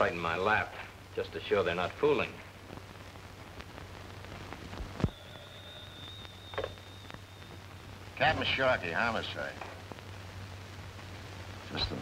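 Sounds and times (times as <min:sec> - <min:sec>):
film soundtrack crackle and hum: 0:00.0 - 0:12.0
faint high-pitched tone: 0:05.0 - 0:08.7.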